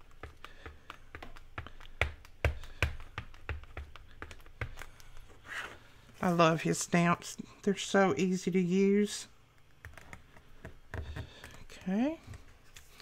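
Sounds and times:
stamp block tapping and clicking: 0.0s - 5.2s.

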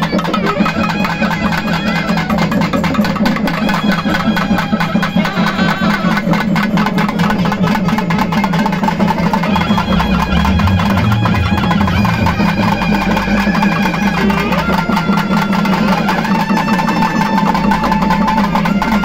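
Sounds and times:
drums beaten with sticks: 0.0s - 19.0s
low drone: 8.8s - 16.7s.

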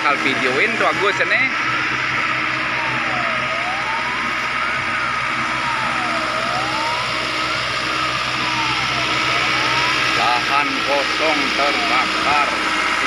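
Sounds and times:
fire engine siren wailing: 0.0s - 13.0s.

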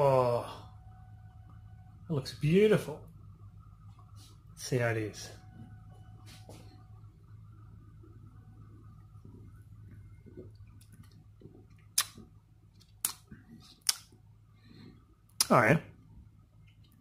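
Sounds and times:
low steady hum: 0.0s - 17.0s
person smacking lips: 10.3s - 14.1s.

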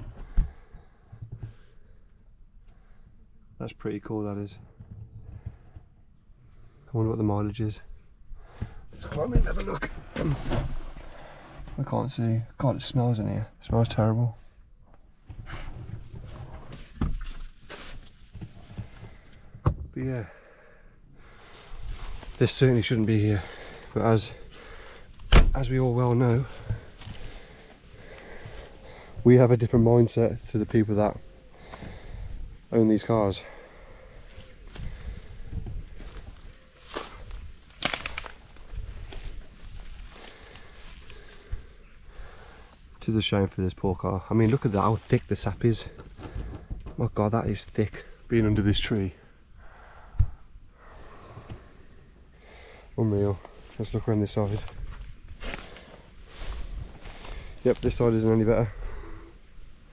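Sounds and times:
rustling and shuffling in car: 8.5s - 13.1s, 14.8s - 20.0s, 21.6s - 29.6s, 34.3s - 37.7s
sharp crackle: 36.8s - 41.4s.

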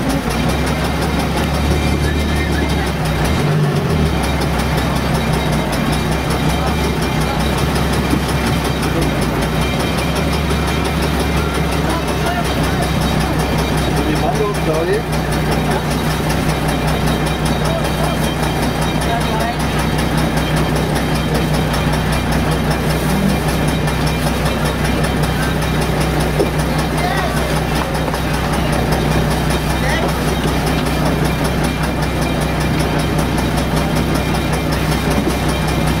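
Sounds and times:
engine idling: 0.0s - 36.0s
people talking: 0.0s - 36.0s.

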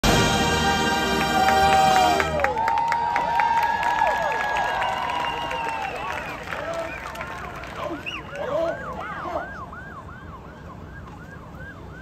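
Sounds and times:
siren yelping: 7.8s - 12.0s.

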